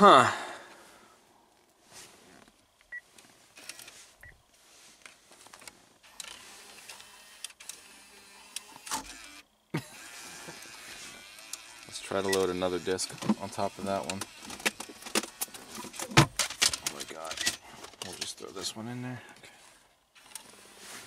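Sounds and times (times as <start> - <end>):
small motor whirring: 3.6 - 4.0, 6.0 - 15.7, 20.1 - 21.0.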